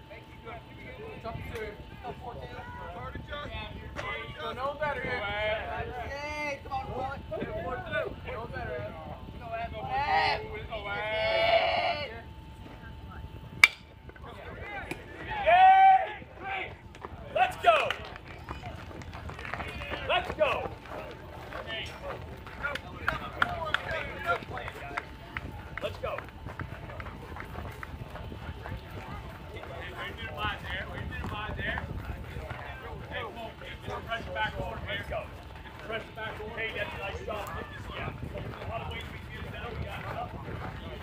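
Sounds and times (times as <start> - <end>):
outdoor background noise: 0.0 - 41.0
scattered voices and calls: 0.0 - 41.0
crowd shouting: 14.7 - 17.9.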